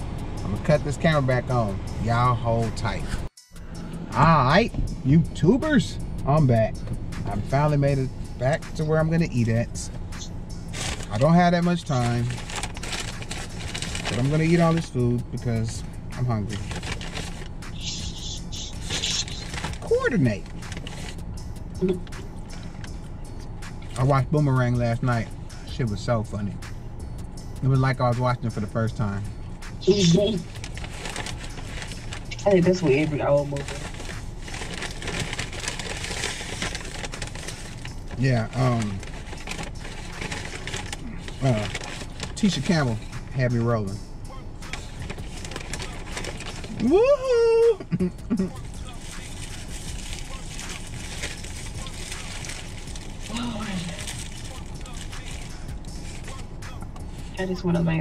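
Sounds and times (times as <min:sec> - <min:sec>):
steady low hum: 0:00.0 - 0:58.0
paper bag rustling: 0:10.7 - 0:14.8, 0:16.5 - 0:17.5, 0:18.9 - 0:21.2, 0:30.0 - 0:43.0, 0:44.7 - 0:46.8, 0:48.8 - 0:56.4
man shouting woohoo: 0:46.7 - 0:48.6.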